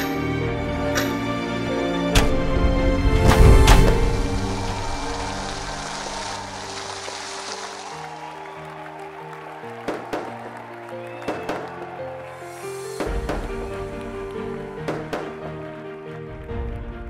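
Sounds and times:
sharp cracks: 3.2s - 8.5s, 9.8s - 10.6s, 12.9s - 15.6s
fireworks hissing and crackling: 3.4s - 8.4s, 12.4s - 15.3s.

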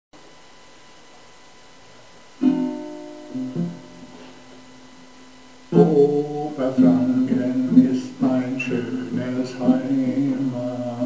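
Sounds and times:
acoustic guitar strumming: 2.4s - 4.8s, 5.7s - 11.0s.

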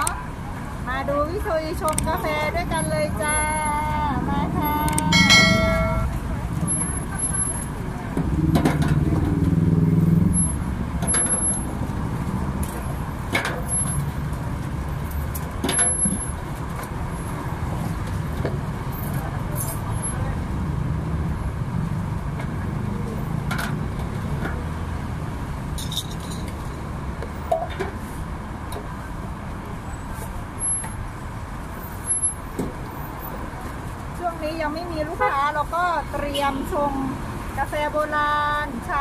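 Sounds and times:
road traffic rumble: 0.0s - 39.0s
clinks of steel utensils: 5.1s - 6.2s.

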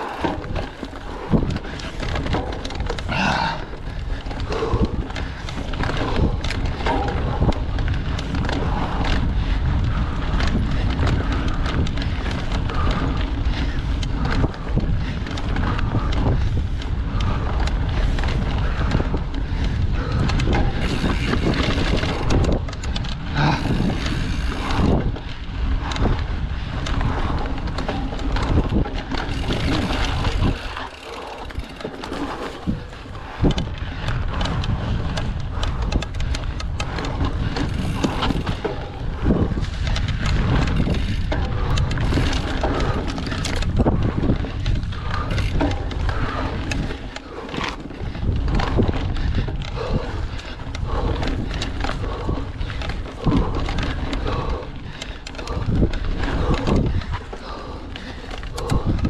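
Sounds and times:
bike rattling over bumps: 0.0s - 59.0s
tyres on dirt: 0.0s - 59.0s
wind buffeting microphone: 0.0s - 59.0s.

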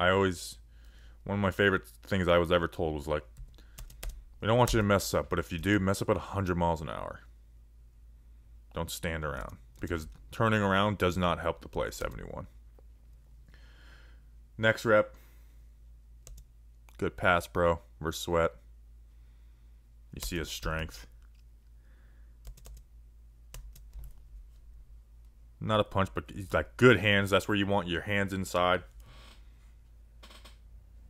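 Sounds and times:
quiet computer clicks: 9.4s - 10.3s.

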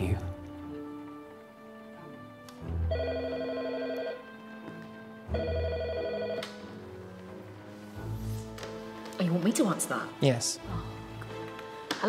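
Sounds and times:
telephone bell ringing: 2.9s - 4.3s, 5.3s - 6.8s.

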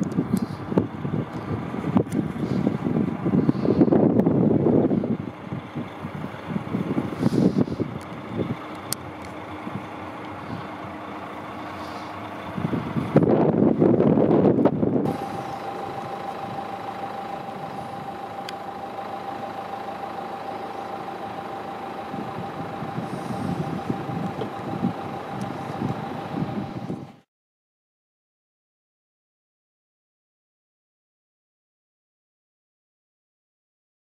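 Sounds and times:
steady whining tone: 0.0s - 27.2s
vehicle engine running: 0.0s - 27.3s.

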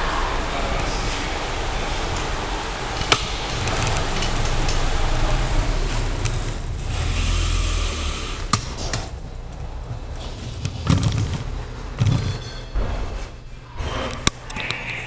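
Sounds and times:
bike tyre and wind rushing: 0.0s - 14.0s.

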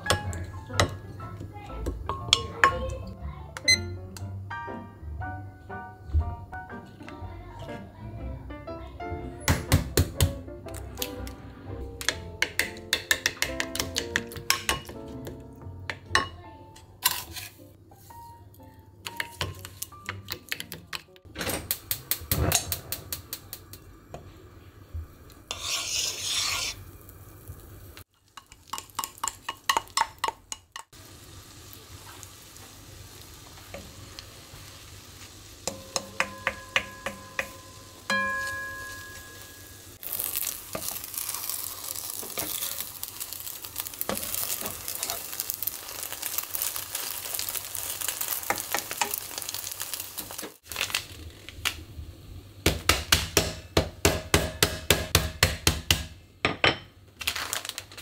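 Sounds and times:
nuts being pounded: 9.5s - 10.4s, 12.0s - 15.0s, 52.7s - 56.2s
wooden spatula scraping a pan: 17.0s - 18.3s, 25.5s - 26.8s
batter sizzling in a pan: 25.2s - 51.6s.

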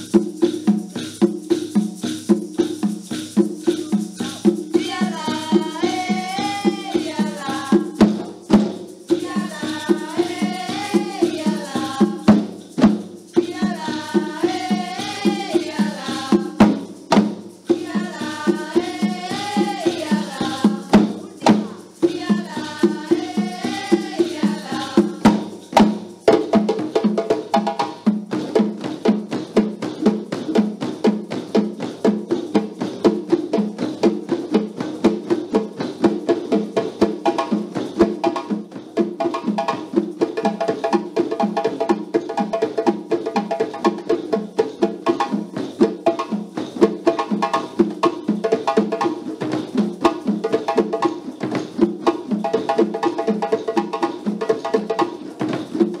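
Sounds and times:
djembe drumming: 0.0s - 56.0s.

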